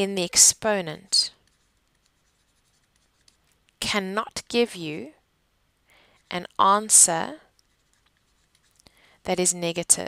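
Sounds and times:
stylus ticking and scratching on screen: 0:00.0 - 0:03.9, 0:06.0 - 0:10.0.

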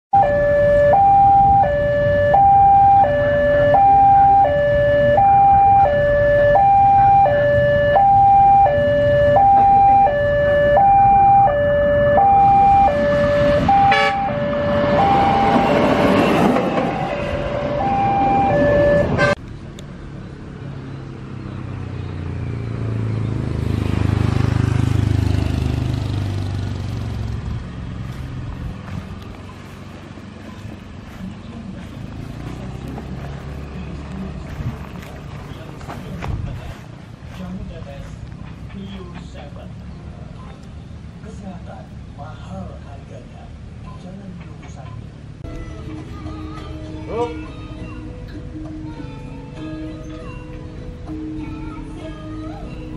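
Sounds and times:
level crossing two-tone alarm: 0:00.2 - 0:19.4
rail vehicle rumbling past: 0:11.4 - 0:40.3.

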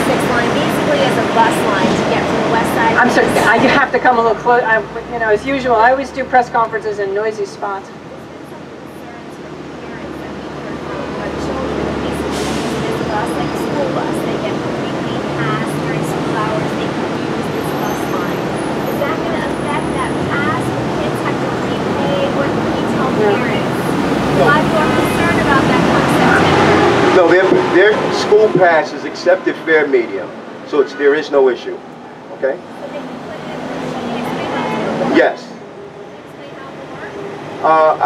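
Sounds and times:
faint voices talking: 0:00.0 - 0:38.0
heavy street traffic: 0:00.0 - 0:38.0.

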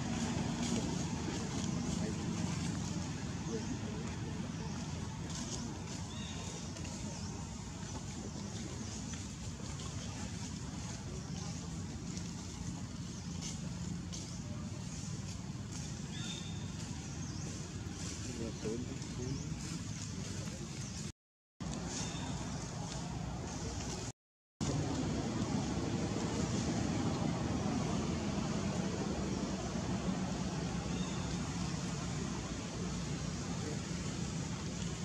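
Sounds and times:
low outdoor rumble: 0:00.0 - 0:35.0.

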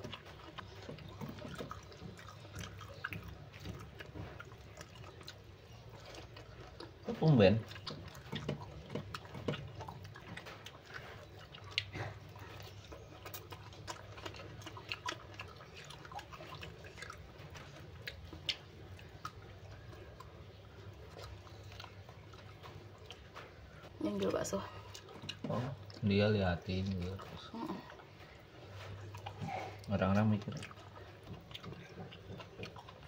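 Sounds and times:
person chewing food: 0:00.0 - 0:33.0.

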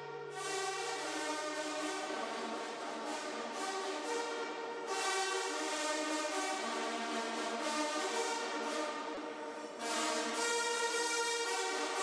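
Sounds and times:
brass instruments holding chords: 0:00.0 - 0:12.0.

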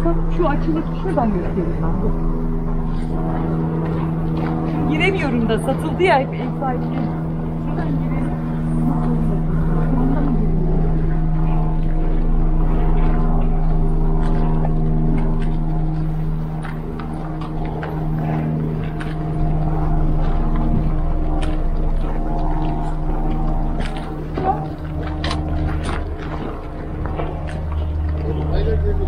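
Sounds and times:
excavator diesel engine running: 0:00.0 - 0:29.0.

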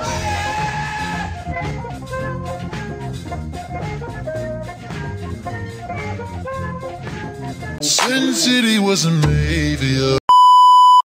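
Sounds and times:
music with singing voice: 0:00.0 - 0:10.2
test tone beep: 0:10.3 - 0:11.0.

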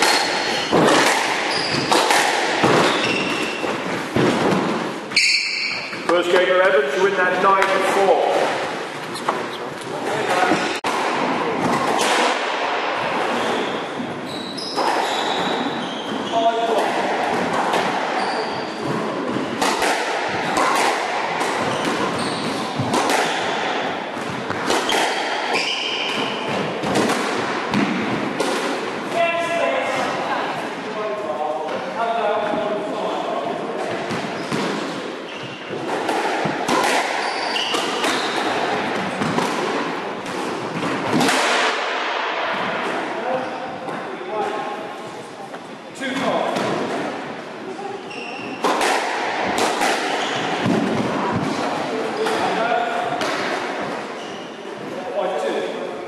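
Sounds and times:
shoes squeaking on floor: 0:00.0 - 0:04.3, 0:05.1 - 0:06.4, 0:08.8 - 0:10.8, 0:13.3 - 0:16.6, 0:18.1 - 0:19.7, 0:21.6 - 0:23.6, 0:24.4 - 0:26.6, 0:34.2 - 0:38.8, 0:48.0 - 0:48.7, 0:49.8 - 0:50.6, 0:54.0 - 0:54.9.

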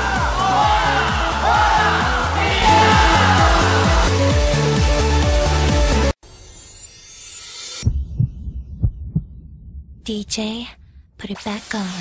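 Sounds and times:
dull low thumps: 0:07.8 - 0:10.1.

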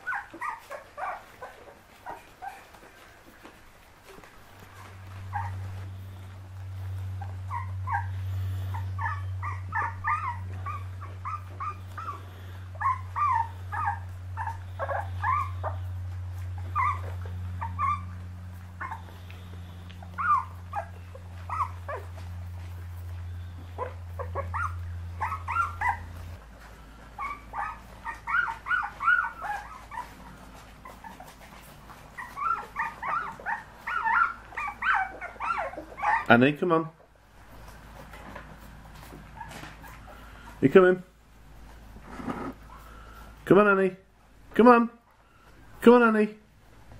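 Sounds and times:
puppies yipping and whimpering: 0:00.0 - 0:36.4, 0:37.0 - 0:40.6, 0:41.3 - 0:43.4
steady low hum: 0:00.0 - 0:46.9.

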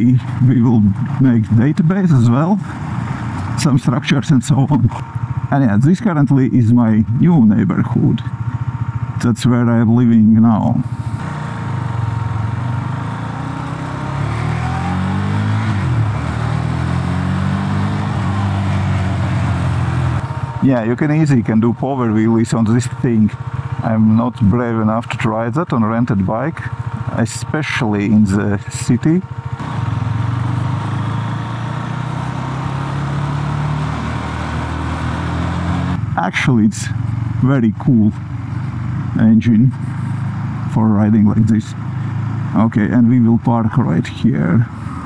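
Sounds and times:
motorcycle engine accelerating: 0:00.0 - 0:45.0.

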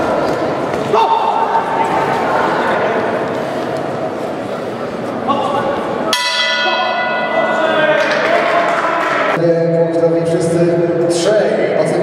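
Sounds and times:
boxing ring bell ringing: 0:06.1 - 0:07.9.

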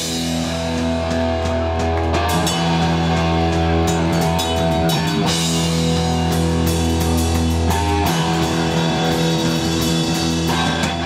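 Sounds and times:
distorted electric guitar: 0:00.0 - 0:11.0
drum kit with crashing cymbals: 0:00.0 - 0:11.0
electric bass: 0:00.0 - 0:11.0.

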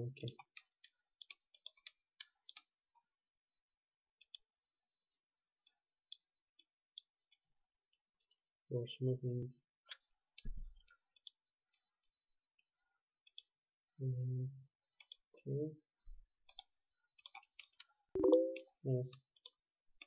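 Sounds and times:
computer mouse clicking: 0:00.2 - 0:02.7, 0:04.2 - 0:04.4, 0:10.6 - 0:11.4, 0:13.3 - 0:13.5, 0:16.5 - 0:18.6, 0:19.3 - 0:19.6.

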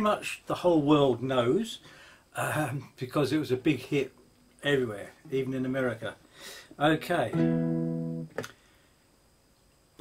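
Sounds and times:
guitar note ringing: 0:07.3 - 0:08.5.

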